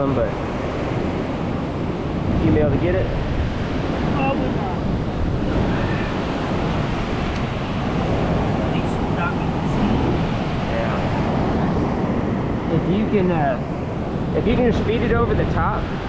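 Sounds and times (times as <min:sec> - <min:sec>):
beach surf: 0:00.0 - 0:16.0
wind buffeting microphone: 0:00.0 - 0:16.0.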